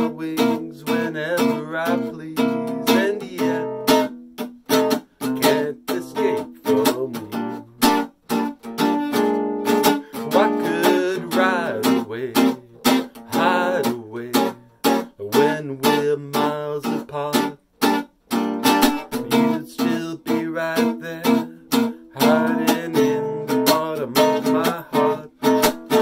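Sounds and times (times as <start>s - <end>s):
man singing: 0.0s - 8.0s, 9.6s - 18.0s, 18.6s - 26.0s
acoustic guitar strumming: 0.0s - 26.0s.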